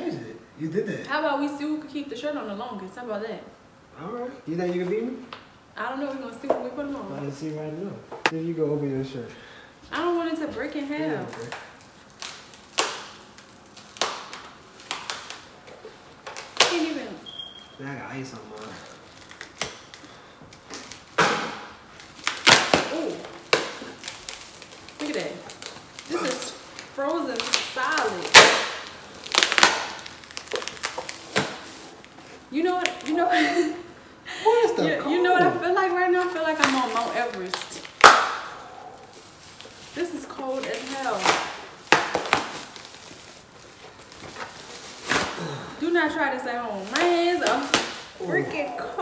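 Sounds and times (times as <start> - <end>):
frozen fabric cracking: 21.8 - 33.6, 36.2 - 45.7.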